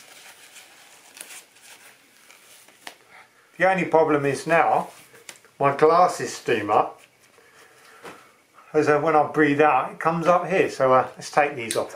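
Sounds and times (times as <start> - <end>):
dust mask rustling: 0.0 - 8.3.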